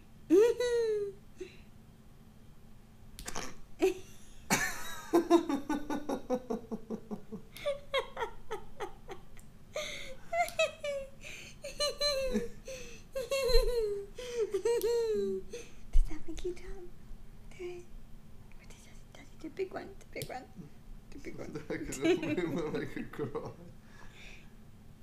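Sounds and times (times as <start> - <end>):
woman laughing: 0.3 - 1.2, 3.8 - 15.6, 21.7 - 23.7.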